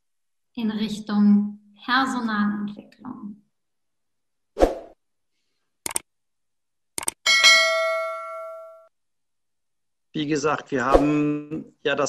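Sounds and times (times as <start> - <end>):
mouse clicks: 5.8 - 6.1, 7.0 - 7.2
notification bell ding: 7.3 - 8.9.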